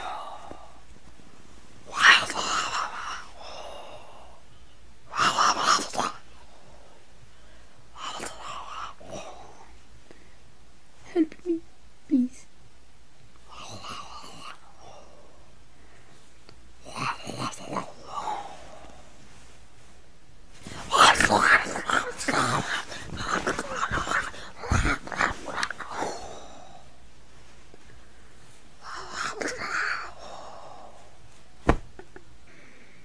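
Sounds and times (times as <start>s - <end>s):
person whispering: 8.0s - 9.7s, 20.7s - 26.9s, 28.8s - 30.9s.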